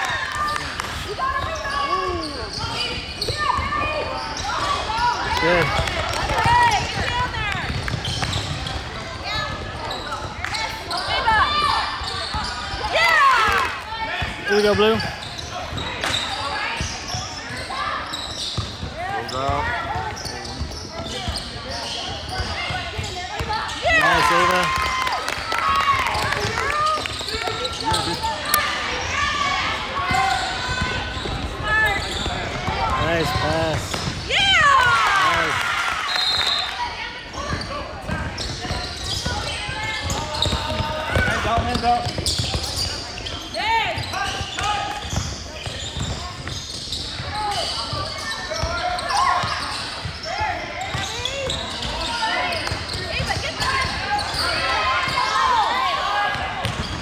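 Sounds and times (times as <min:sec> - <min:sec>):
people calling and shouting: 0:00.0 - 0:57.0
basketball bouncing on court: 0:05.3 - 0:16.2, 0:18.2 - 0:29.3, 0:29.9 - 0:35.4, 0:37.3 - 0:55.4, 0:56.2 - 0:57.0.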